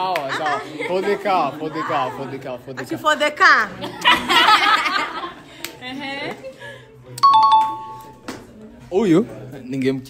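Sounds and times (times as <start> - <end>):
two-note doorbell chime: 7.2 - 8.2.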